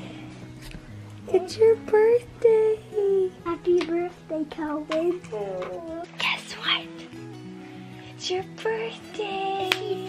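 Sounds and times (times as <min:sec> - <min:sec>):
background music with held notes: 0:00.0 - 0:10.0
child's sing-song voice: 0:01.2 - 0:06.8, 0:08.1 - 0:10.0
breathy whispered sounds: 0:06.1 - 0:08.2.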